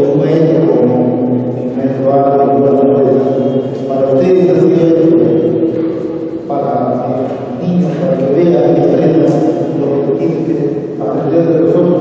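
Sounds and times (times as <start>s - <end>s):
man speaking through a pa: 0.0s - 12.0s.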